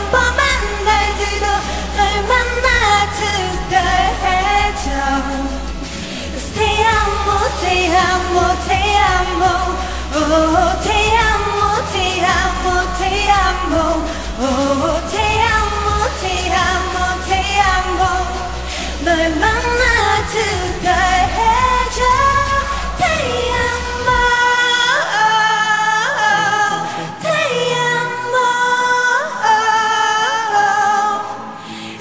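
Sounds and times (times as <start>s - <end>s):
low rumble: 0.0s - 24.7s
woman singing: 0.0s - 32.0s.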